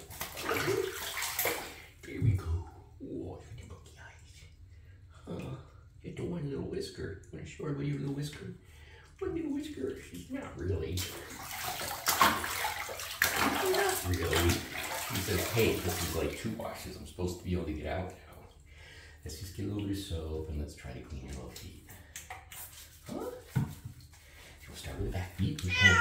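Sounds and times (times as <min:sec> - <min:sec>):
bathwater sloshing and splashing: 0:00.0 - 0:02.9, 0:07.1 - 0:26.0.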